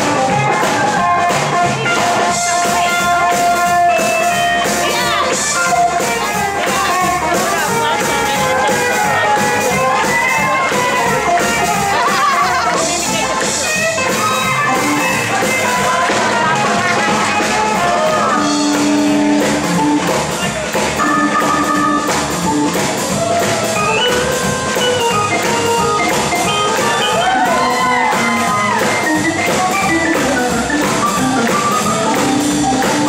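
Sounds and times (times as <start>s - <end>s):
swing jazz band music: 0.0s - 33.0s.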